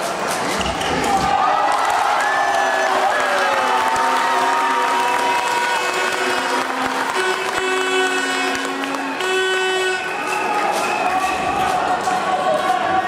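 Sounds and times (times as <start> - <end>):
crowd applauding and cheering: 0.7 - 13.0.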